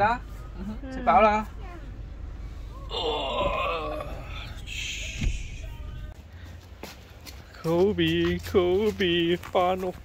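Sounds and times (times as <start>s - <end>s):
person drawn-out vocal sound: 2.8s - 5.6s.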